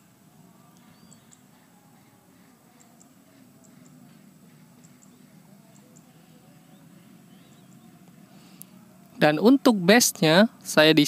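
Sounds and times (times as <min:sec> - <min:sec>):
faint distant chirps: 0:00.0 - 0:09.7
low steady hum: 0:00.0 - 0:11.0.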